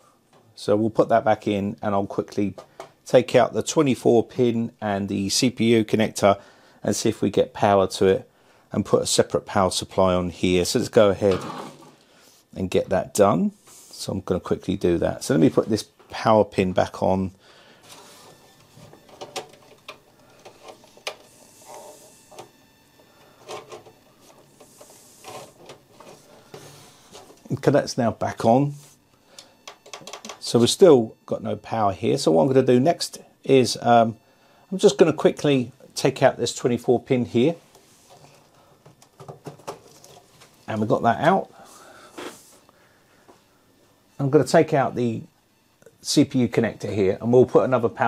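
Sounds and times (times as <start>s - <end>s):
handling noises: 17.8s - 27.7s, 37.6s - 43.5s.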